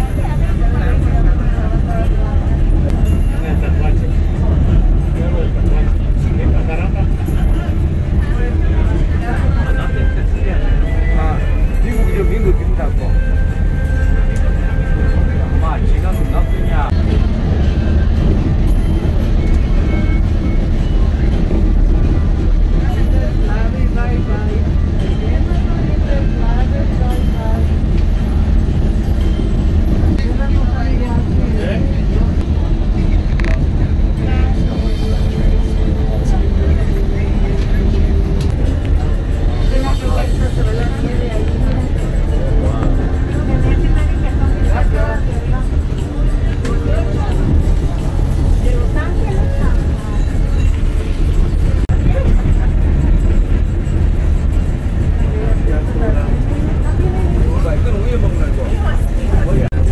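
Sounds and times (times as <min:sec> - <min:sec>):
passengers talking: 0:00.0 - 0:59.9
train rumbling inside carriage: 0:00.0 - 0:59.9.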